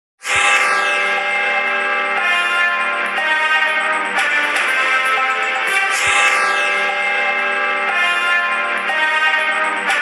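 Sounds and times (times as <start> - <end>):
held synthesizer chord: 0.3 - 10.0.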